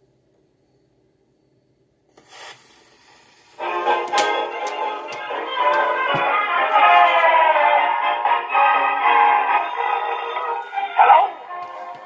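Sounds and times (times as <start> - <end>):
orchestra on an old phonograph: 3.4 - 12.0.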